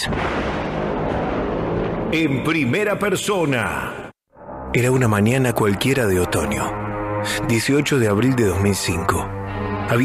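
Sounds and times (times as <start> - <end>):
boom with heavy rumble: 0.0 - 2.5.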